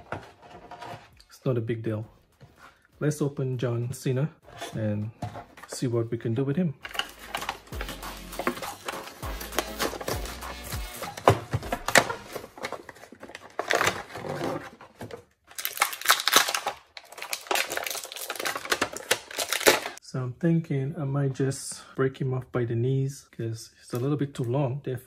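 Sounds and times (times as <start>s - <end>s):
plastic packaging crinkling and tearing: 6.9s - 10.3s, 11.2s - 20.0s.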